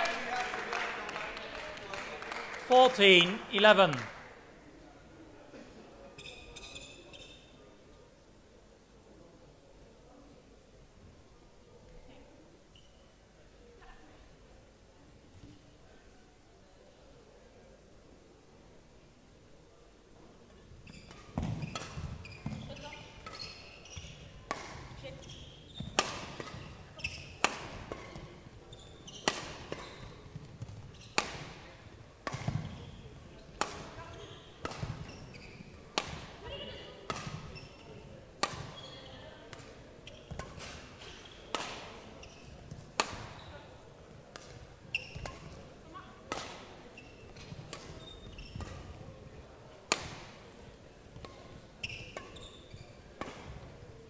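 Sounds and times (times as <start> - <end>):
shoes squeaking on floor: 6.2 - 7.5, 20.8 - 31.6, 32.3 - 33.2, 33.8 - 39.4, 40.0 - 43.7, 44.5 - 46.1, 46.8 - 49.1, 51.3 - 53.6
racket hitting shuttlecock: 21.1 - 28.5, 29.1 - 32.9, 33.5 - 37.8, 38.4 - 38.8, 39.5 - 43.5, 44.3 - 45.7, 46.3 - 49.1, 49.9 - 50.4, 51.2 - 53.8.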